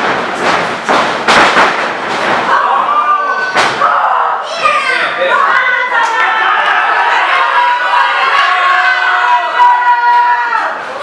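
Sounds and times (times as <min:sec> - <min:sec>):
crowd shouting: 0:02.5 - 0:11.0.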